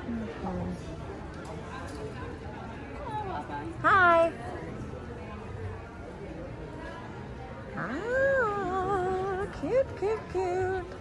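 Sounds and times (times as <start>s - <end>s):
shop background noise: 0.0s - 11.0s.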